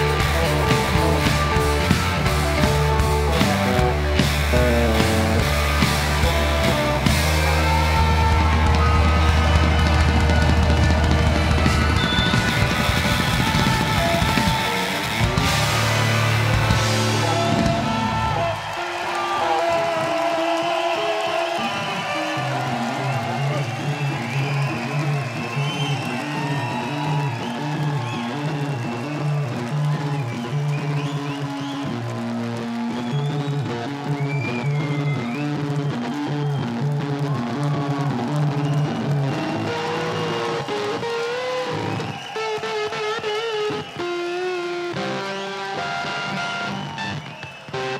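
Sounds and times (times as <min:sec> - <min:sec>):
pulsing bass riff: 0:00.0 - 0:18.5
electric guitar with bent notes: 0:00.0 - 0:20.2, 0:21.6 - 0:47.9.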